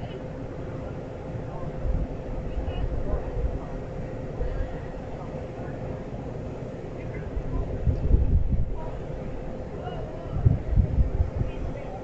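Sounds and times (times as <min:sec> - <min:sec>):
faint distant voices: 0:00.0 - 0:12.0
faint steady hum: 0:00.0 - 0:12.0
wind rumbling on microphone: 0:01.5 - 0:05.1, 0:07.0 - 0:12.0.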